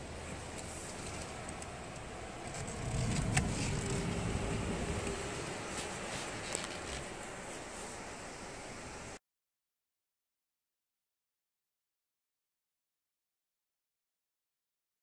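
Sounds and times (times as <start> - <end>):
thin steady whine: 0.0 - 9.2
vehicle engine and road rumble: 0.0 - 9.2.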